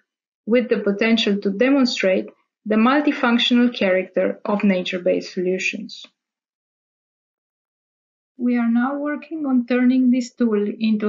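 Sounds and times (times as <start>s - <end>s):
voice: 0.5s - 6.1s, 8.4s - 11.0s.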